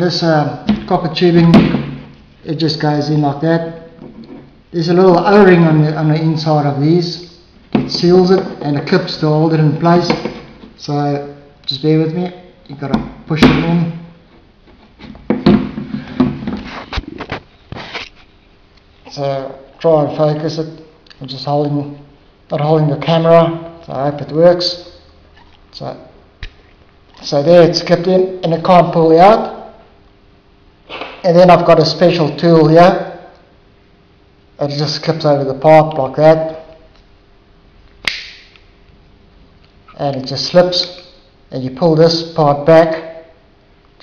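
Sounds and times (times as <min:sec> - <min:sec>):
sharp plastic click: 0:38.0 - 0:38.6.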